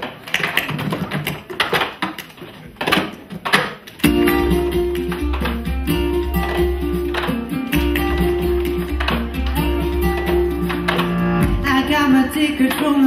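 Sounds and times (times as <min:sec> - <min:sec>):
guitar music with bass: 0:04.0 - 0:12.2.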